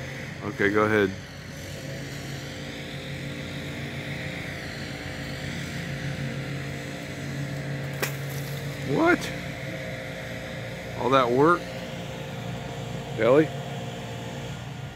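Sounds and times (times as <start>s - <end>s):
engine hum with pitched tones: 0.0s - 14.9s.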